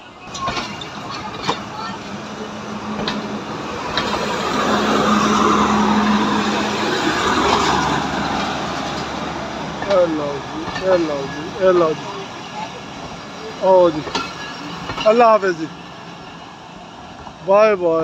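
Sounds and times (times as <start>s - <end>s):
train coaches rumbling: 0.0s - 18.0s.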